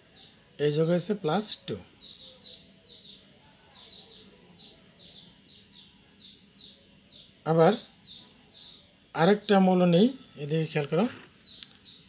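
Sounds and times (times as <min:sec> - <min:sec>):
small bird chirping rapidly: 0:00.0 - 0:12.0.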